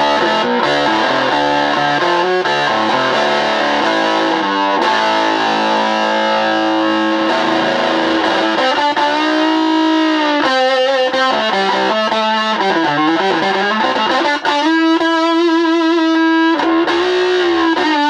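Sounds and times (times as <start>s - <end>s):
overdriven electric guitar lead: 0.0s - 18.0s.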